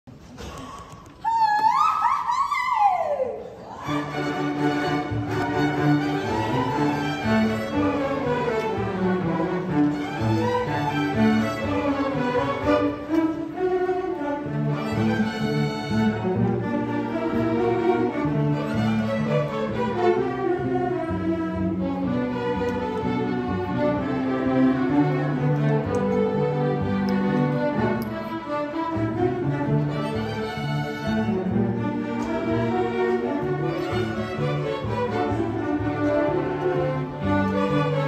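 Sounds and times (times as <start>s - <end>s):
string orchestra playing: 3.7s - 38.0s.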